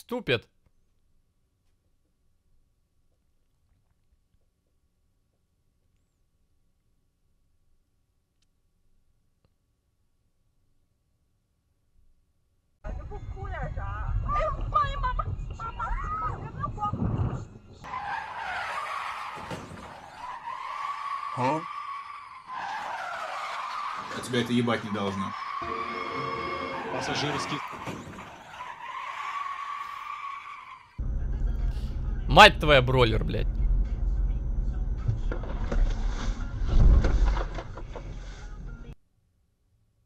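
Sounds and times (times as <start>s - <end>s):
road and engine rumble: 12.9s - 39.0s
car tyres squealing: 17.2s - 31.0s
low engine rumble: 31.0s - 38.9s.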